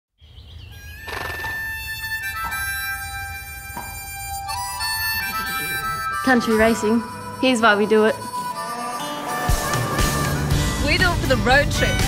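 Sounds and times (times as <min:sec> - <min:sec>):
bird chirping: 0:00.1 - 0:07.5
harmonica chord: 0:00.7 - 0:12.0
soundtrack music: 0:03.2 - 0:12.0.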